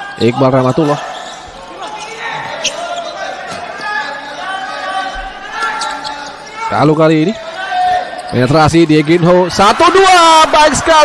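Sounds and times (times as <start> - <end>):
crowd noise in hall: 0.0 - 11.0
shoe squeak: 0.7 - 6.9, 7.8 - 8.5.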